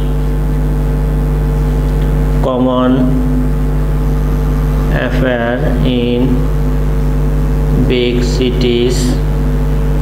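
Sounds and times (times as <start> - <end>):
loud steady low hum: 0.0 - 10.0.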